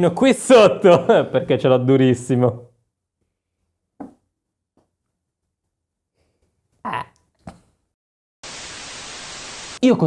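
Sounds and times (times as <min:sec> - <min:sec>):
white noise static burst: 0:08.4 - 0:09.8.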